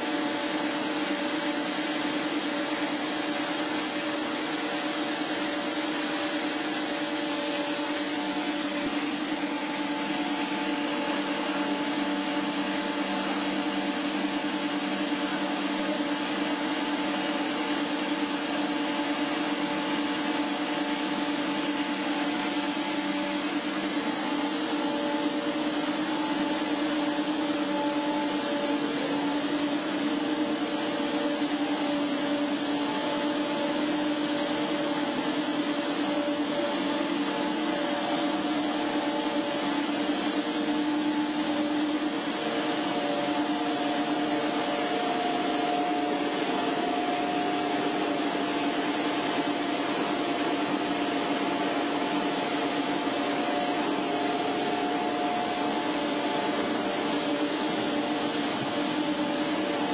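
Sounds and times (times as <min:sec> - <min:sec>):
extrusion machine hum: 0:00.0 - 0:59.9.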